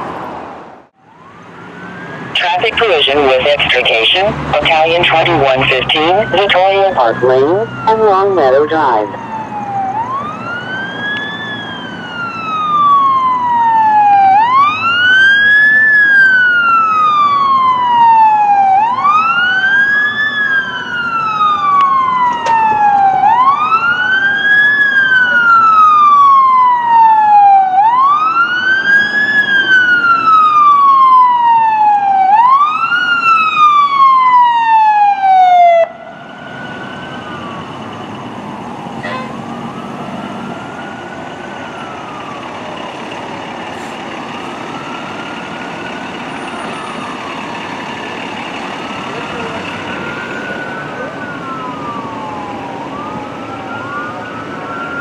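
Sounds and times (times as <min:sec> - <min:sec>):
faint siren wail: 0:00.0 - 0:55.0
fire engine siren wailing: 0:00.0 - 0:55.0.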